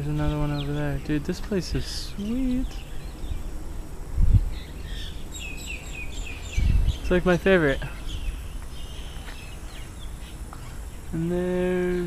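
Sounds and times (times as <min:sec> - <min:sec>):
bird chirping: 0:00.0 - 0:12.0
low rumbles on microphone: 0:02.6 - 0:10.2.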